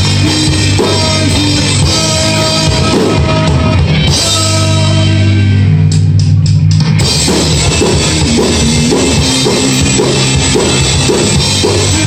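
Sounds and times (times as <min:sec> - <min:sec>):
drum kit: 0:00.0 - 0:12.0
electric bass: 0:00.0 - 0:12.0
electric guitar: 0:00.0 - 0:12.0.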